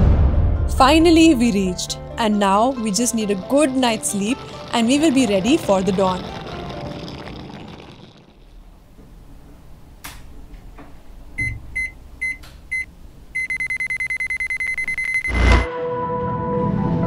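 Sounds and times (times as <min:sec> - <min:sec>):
alarm clock beeping: 0:11.4 - 0:15.7.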